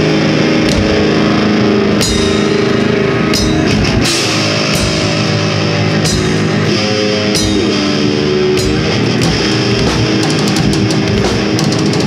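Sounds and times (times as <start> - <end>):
heavy metal band playing: 0.0 - 12.0
cymbal crash: 0.7 - 11.6.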